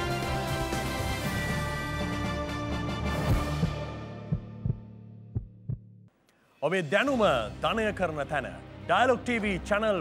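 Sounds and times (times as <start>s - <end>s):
heartbeat-like double thumps: 3.3s - 6.1s.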